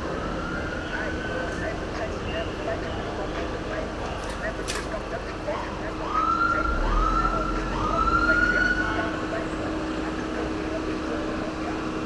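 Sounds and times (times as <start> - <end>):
siren whoops: 6.0 - 9.1.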